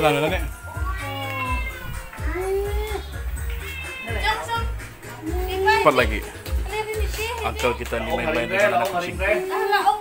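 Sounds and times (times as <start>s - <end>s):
cat meowing: 0.7s - 5.9s.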